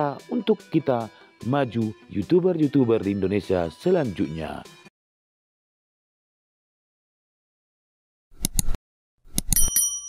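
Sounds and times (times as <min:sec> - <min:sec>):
mouse clicks: 0:08.4 - 0:09.6
bright bell ding: 0:09.5 - 0:10.0.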